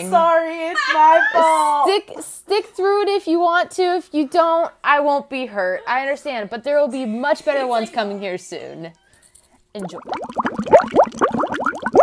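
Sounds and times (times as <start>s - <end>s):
bubbling rising notes: 9.8s - 12.0s.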